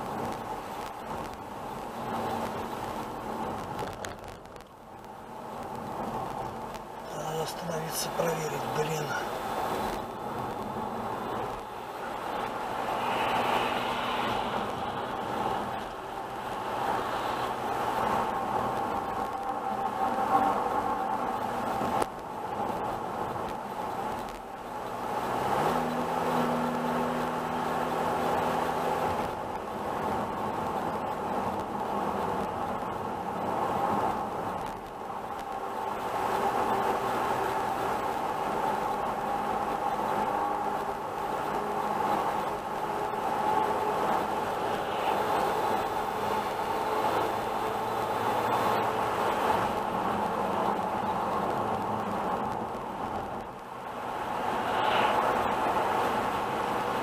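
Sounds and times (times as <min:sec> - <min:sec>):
car engine hum: 0:00.0 - 0:57.0.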